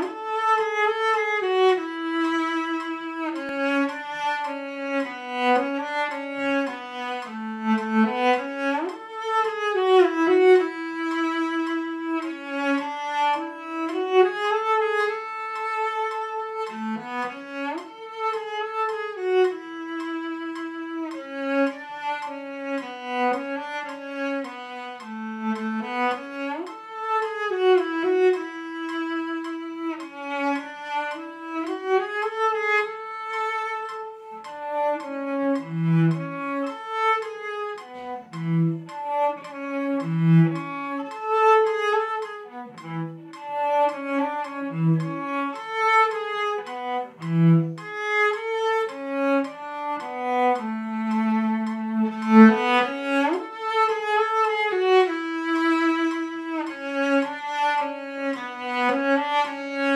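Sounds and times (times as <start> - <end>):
bowed cello melody: 0.0 - 59.9.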